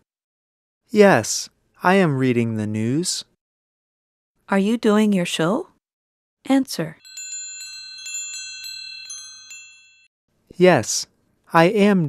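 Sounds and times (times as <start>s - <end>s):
chimes tinkling: 7.0s - 10.1s.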